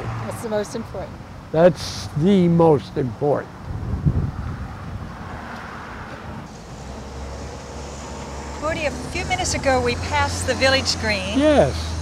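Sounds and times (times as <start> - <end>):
road traffic passing: 0.0 - 12.0
wind rumble on microphone: 3.6 - 6.5
car tyre noise: 3.6 - 12.0.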